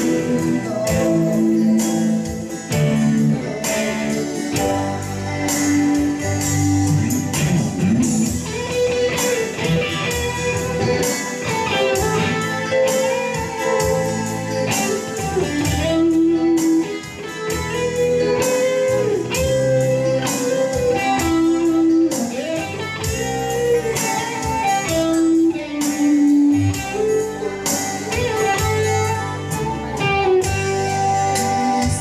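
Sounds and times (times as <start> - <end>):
bass: 0.0 - 32.0
guitar melody with bent notes: 0.0 - 32.0
steady beat: 0.0 - 32.0.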